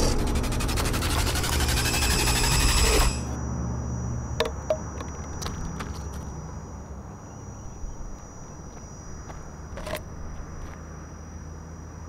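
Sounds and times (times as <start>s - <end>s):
loud fast-pulsing soundtrack: 0.0s - 3.3s
steady high whine: 0.0s - 12.0s.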